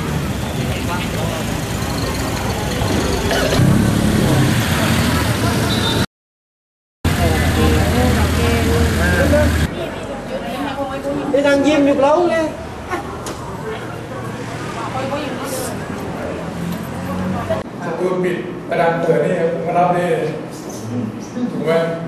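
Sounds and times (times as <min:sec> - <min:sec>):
car engines passing slowly: 0:00.0 - 0:06.0, 0:07.1 - 0:10.8, 0:12.6 - 0:17.8
car engine idling: 0:07.1 - 0:09.7
people talking: 0:07.1 - 0:16.5.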